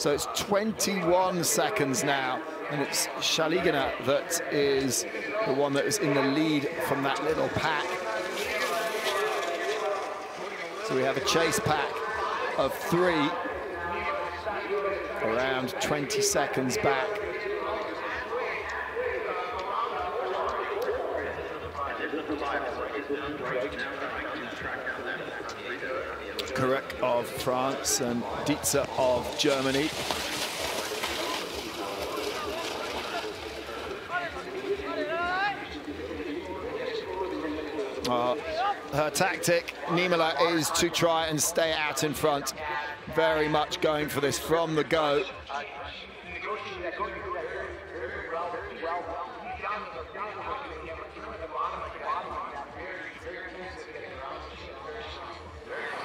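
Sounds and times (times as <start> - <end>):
indistinct voices talking: 0.0 - 56.0
skis hissing on snow: 29.1 - 33.6.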